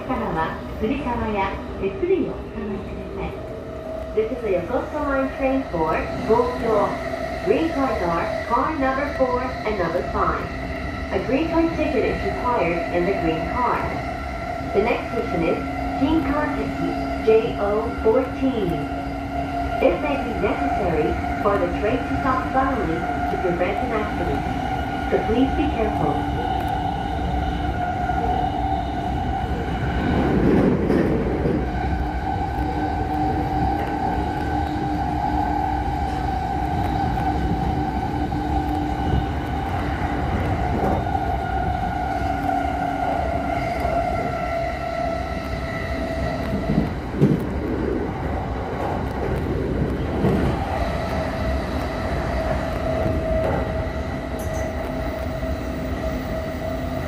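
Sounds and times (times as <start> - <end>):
electric train whine: 0.0 - 57.0
wheels rumbling on rails: 0.0 - 57.0.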